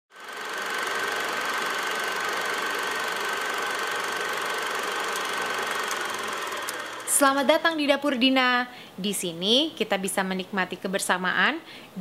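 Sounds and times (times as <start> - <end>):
small electric motor whining: 0.1 - 7.2.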